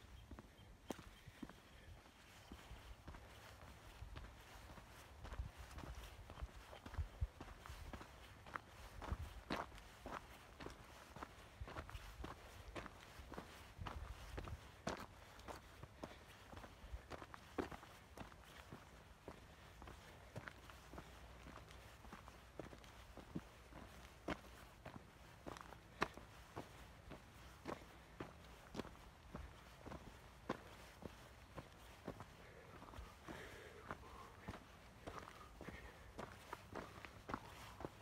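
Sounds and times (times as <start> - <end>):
footsteps on rocky dirt trail: 0.0 - 38.0.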